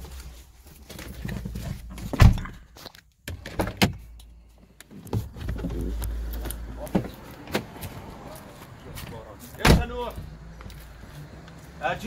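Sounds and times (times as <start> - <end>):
rumbling handling noise: 4.9 - 7.8
thump: 9.6 - 9.9.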